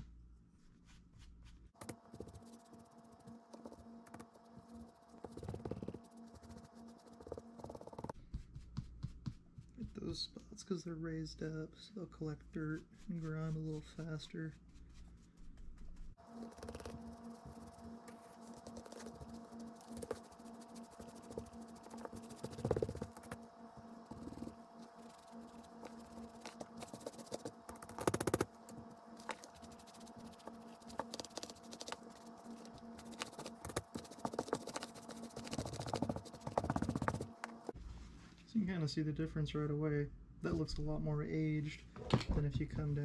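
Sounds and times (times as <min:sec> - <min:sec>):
paintbrush scrubbing fabric: 0:00.6 - 0:09.8, 0:12.6 - 0:37.8.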